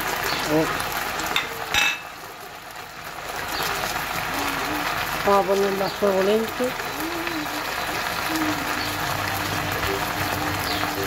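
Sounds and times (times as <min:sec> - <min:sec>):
meat and garlic sizzling in pot: 0:00.0 - 0:11.0.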